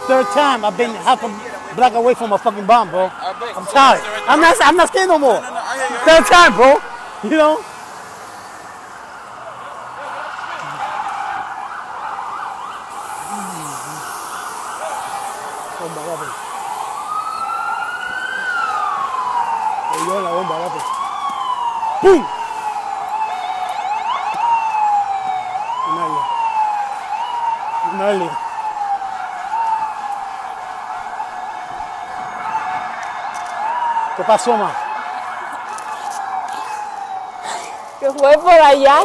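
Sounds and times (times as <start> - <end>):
emergency vehicle siren wailing: 0.0 - 39.0.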